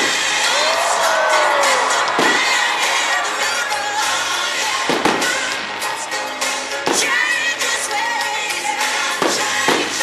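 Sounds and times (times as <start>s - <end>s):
fireworks bangs: 0.0s - 8.1s, 9.0s - 10.0s
loud music: 0.0s - 10.0s.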